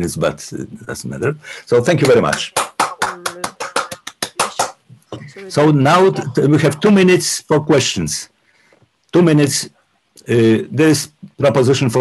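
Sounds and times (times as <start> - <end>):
person speaking: 0.0 - 8.1
person clapping quickly: 1.9 - 4.9.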